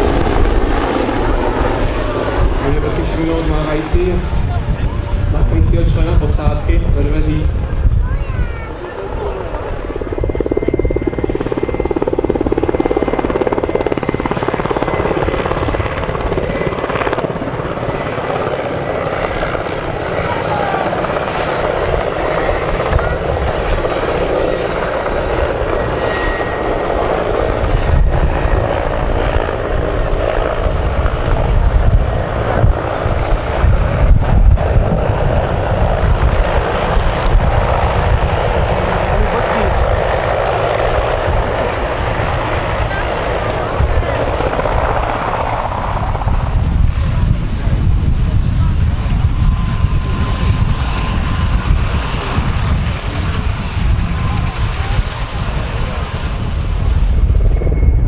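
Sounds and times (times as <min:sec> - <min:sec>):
helicopter rotor and turbine: 0:00.0 - 0:58.0.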